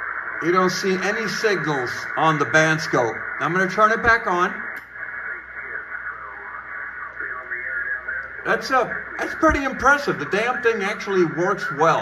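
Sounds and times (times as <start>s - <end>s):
steady radio hiss: 0.0s - 12.0s
voices over radio: 0.0s - 12.0s.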